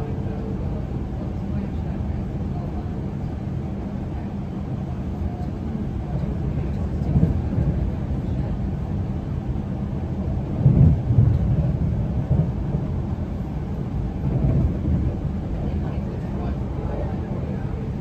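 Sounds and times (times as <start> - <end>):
train rumbling along track: 0.0 - 18.0.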